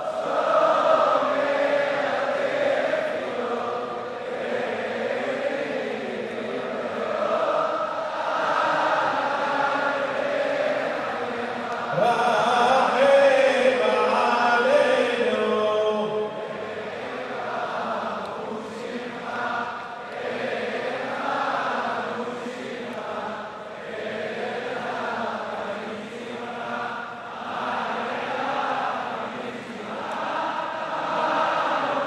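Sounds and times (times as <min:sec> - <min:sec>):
crowd chanting prayers: 0:00.0 - 0:32.0.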